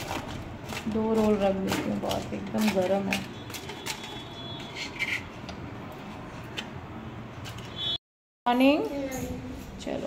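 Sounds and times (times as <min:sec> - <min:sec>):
metal spoon scraping ceramic plate: 0:02.6 - 0:05.4.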